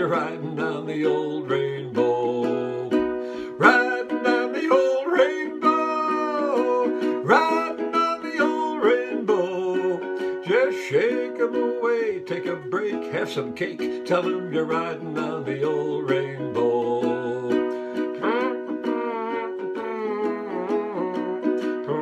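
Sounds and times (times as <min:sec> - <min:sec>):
man singing: 0:00.0 - 0:22.0
ukulele strumming: 0:00.0 - 0:22.0.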